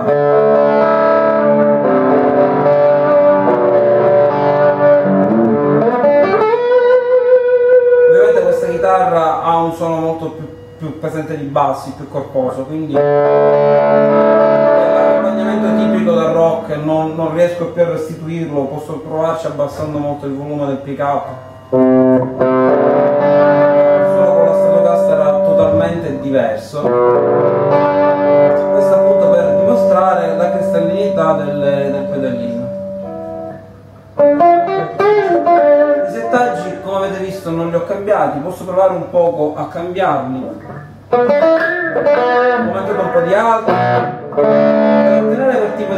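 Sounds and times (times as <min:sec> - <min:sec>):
electric guitar chord ringing: 0:00.0 - 0:11.6, 0:12.9 - 0:18.6, 0:19.6 - 0:37.8, 0:40.5 - 0:45.9.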